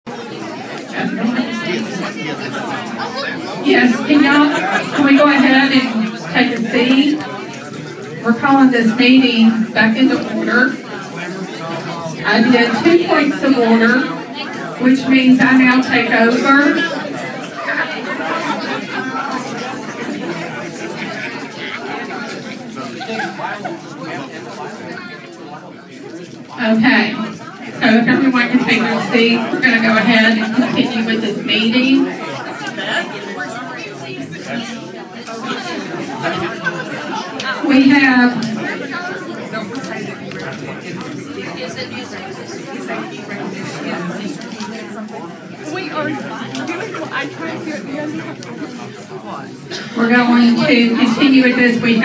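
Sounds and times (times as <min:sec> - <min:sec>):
people chattering: 0:00.0 - 0:52.0.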